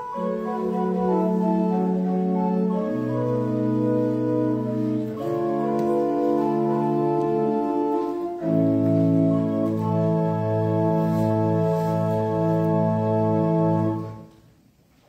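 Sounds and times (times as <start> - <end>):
organ playing sustained chords: 0.0 - 14.3.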